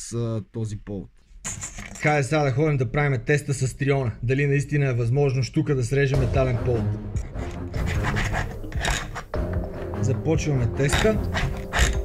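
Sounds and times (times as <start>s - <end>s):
hacksaw rasping on steel wire: 7.1s - 10.0s, 10.6s - 12.0s.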